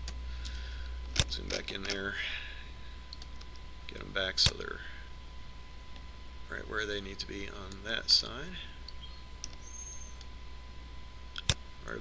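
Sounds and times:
recording hum and hiss: 0:00.0 - 0:12.0
thin high whine: 0:00.0 - 0:12.0.

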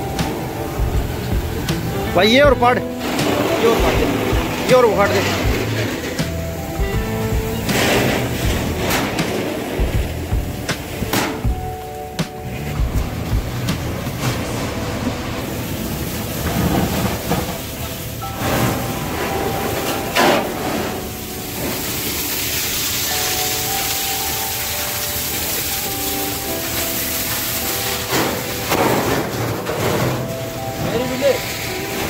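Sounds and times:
fire hose water spray hissing: 0:00.0 - 0:11.2, 0:15.4 - 0:32.0.

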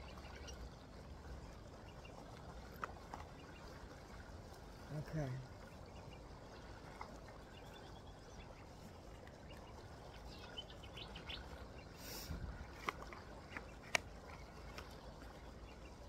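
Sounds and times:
rustle: 0:06.8 - 0:16.0.

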